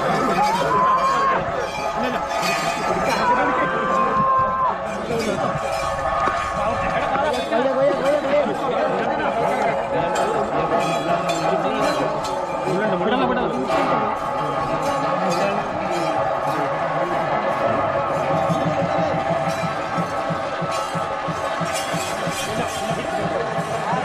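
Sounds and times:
ringing metallic tones: 0.0 - 4.2, 4.8 - 24.0
crowd chatter: 0.0 - 24.0
drum strokes: 0.0 - 24.0
men's voices: 0.0 - 24.0.

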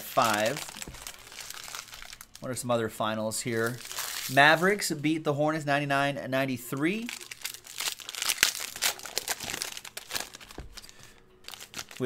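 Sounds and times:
plastic foil wrapper crinkling: 0.0 - 2.5, 3.5 - 4.8, 7.0 - 12.0.

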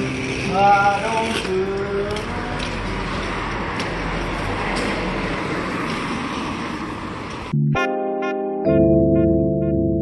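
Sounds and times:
street noise rumble: 0.0 - 7.8.

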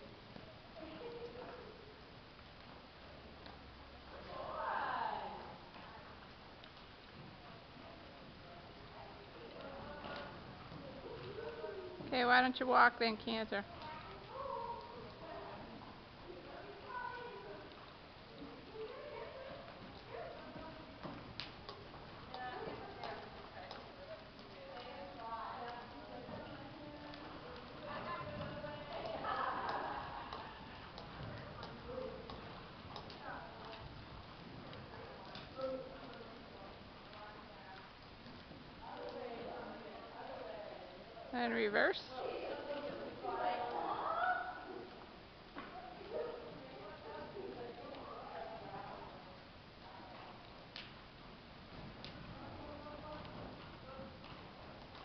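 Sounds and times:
horse hooves on arena footing: 0.0 - 40.6, 42.0 - 55.0
low steady background noise: 0.0 - 55.0
faint voices: 13.6 - 34.0.

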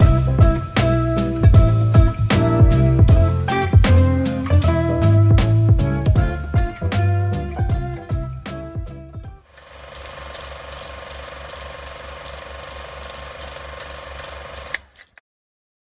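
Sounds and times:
guitar music: 0.0 - 9.4
film projector clatter: 9.5 - 15.2.

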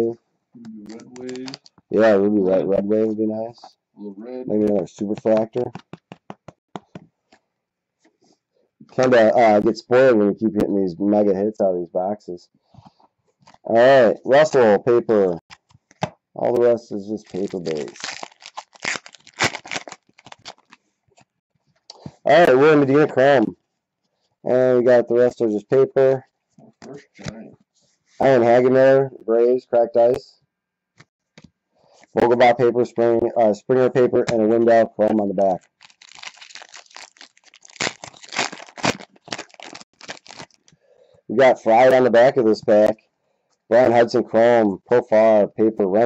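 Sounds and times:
wrapper tearing and crinkling: 1.1 - 1.8, 17.2 - 20.8, 35.6 - 40.7.

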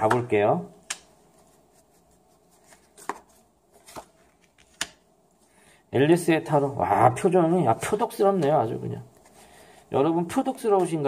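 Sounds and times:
cards being dealt on a table: 0.1 - 5.0.

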